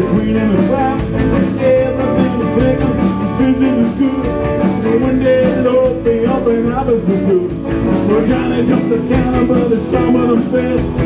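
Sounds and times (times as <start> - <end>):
live rock and roll band: 0.0 - 11.0
steady drum beat: 0.0 - 11.0.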